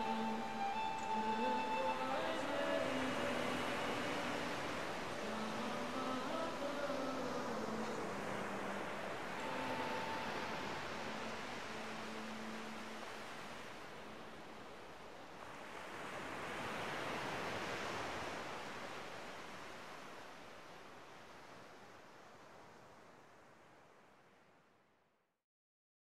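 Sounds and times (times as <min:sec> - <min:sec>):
waves breaking on sand: 0:00.0 - 0:24.4.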